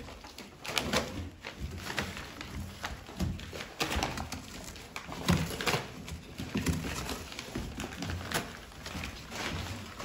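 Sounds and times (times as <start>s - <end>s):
cardboard and paper rustling: 0.0s - 10.0s.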